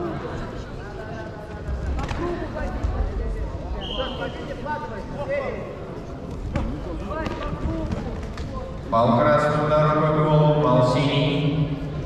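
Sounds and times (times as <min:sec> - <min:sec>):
distant voices in hall: 0:00.0 - 0:12.0.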